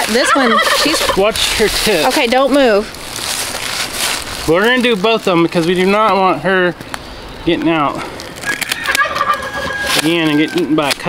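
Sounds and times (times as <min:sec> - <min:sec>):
turkey gobbling: 0:00.0 - 0:02.1, 0:08.3 - 0:10.8.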